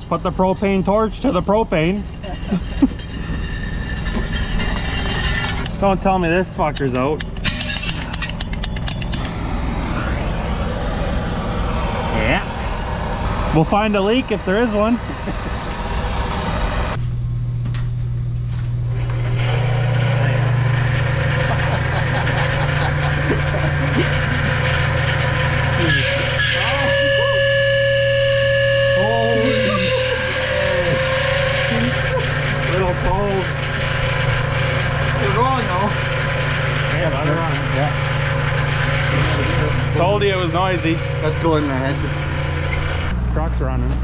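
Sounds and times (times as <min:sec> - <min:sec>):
people talking: 0:00.0 - 0:02.6, 0:05.8 - 0:07.2, 0:12.1 - 0:12.5, 0:13.5 - 0:15.0, 0:20.2 - 0:20.5, 0:25.8 - 0:27.5, 0:28.9 - 0:32.0, 0:32.6 - 0:33.5, 0:35.2 - 0:36.0, 0:36.9 - 0:38.0, 0:39.1 - 0:42.2, 0:43.3 - 0:44.0
low mechanical hum: 0:00.0 - 0:44.0
brief held tone: 0:25.8 - 0:32.2.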